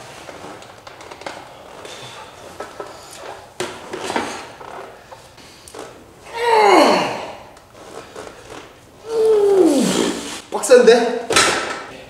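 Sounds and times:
man groaning with strain: 6.3 - 7.5, 9.0 - 10.3.

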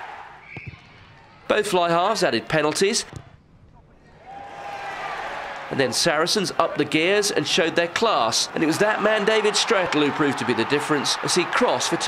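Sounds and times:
stadium crowd cheering: 0.0 - 1.3, 4.2 - 12.0
hushed stadium crowd: 3.8 - 12.0.

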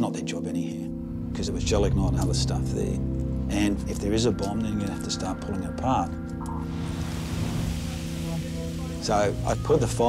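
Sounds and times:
background music drone: 0.0 - 10.0
hissing rush of noise: 6.6 - 9.8.

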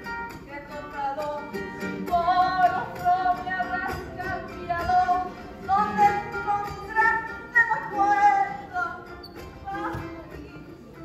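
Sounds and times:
strummed acoustic guitar: 0.0 - 11.0
woman singing: 0.2 - 11.0.

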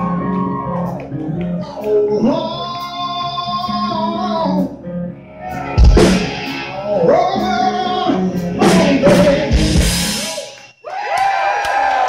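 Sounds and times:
live hard rock band: 1.8 - 10.8.

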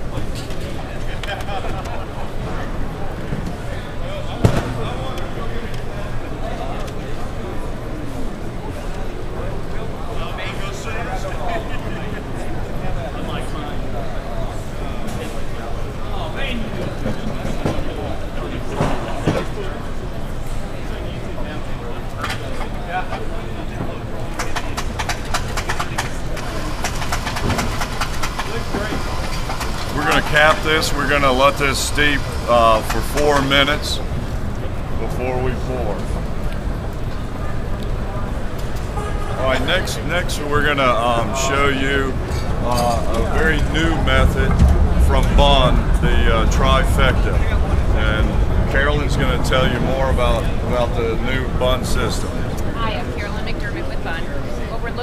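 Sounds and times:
people chattering: 0.0 - 55.0
low hum: 28.5 - 55.0.

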